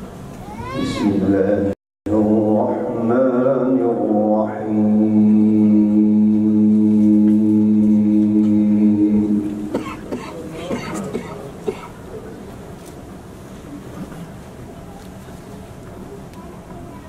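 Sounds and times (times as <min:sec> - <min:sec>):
man chanting into a microphone: 0:01.0 - 0:09.7.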